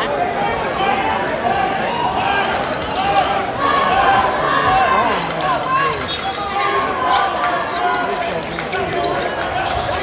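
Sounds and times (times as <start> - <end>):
crowd voices and shouting: 0.0 - 10.0.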